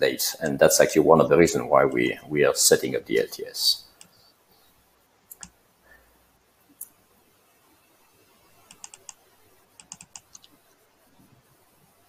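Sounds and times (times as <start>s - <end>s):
keyboard keystrokes: 8.7s - 9.2s, 9.8s - 10.5s.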